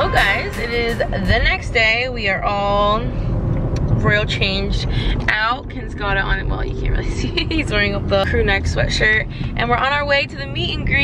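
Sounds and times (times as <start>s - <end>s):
woman talking: 0.0s - 3.2s, 4.0s - 11.0s
car cabin road noise: 0.0s - 11.0s.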